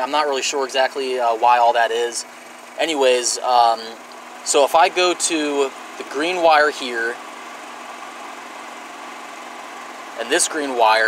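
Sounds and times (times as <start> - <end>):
motor humming: 0.9 - 11.0.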